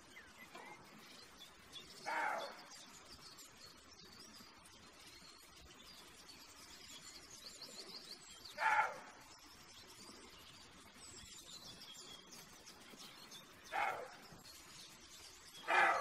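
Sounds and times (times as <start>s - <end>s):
faint birdsong: 0.0s - 16.0s.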